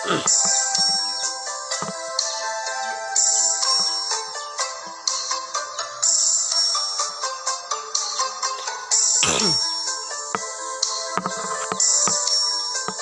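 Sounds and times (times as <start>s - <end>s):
electronic backing track: 0.0s - 13.0s
pipe melody: 0.0s - 13.0s.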